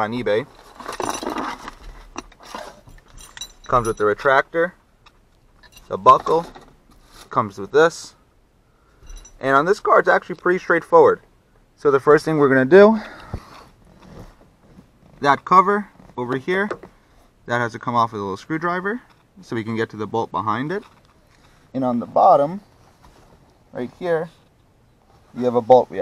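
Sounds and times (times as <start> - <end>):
faint rustling: 8.8 - 10.6, 13.0 - 17.4, 20.7 - 26.0
seatbelt webbing scraping cardboard: 13.4 - 15.3.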